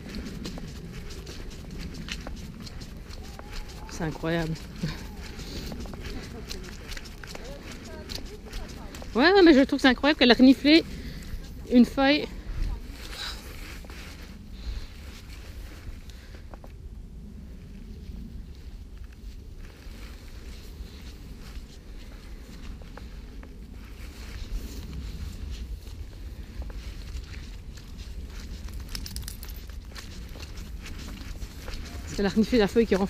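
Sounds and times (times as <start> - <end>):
footsteps through grass: 0.0 - 16.0, 19.0 - 33.0
steady low rumble: 0.0 - 33.0.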